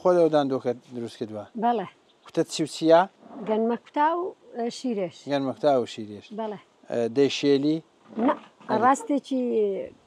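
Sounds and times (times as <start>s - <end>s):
person talking: 8.2s - 9.9s.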